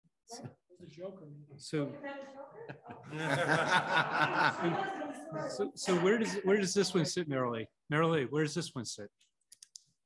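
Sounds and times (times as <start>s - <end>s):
people talking: 1.7s - 9.1s
group of people laughing: 2.6s - 5.2s.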